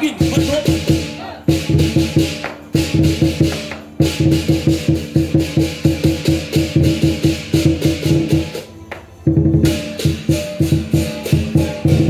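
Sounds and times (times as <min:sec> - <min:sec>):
drum cymbals and gong percussion: 0:00.0 - 0:12.0.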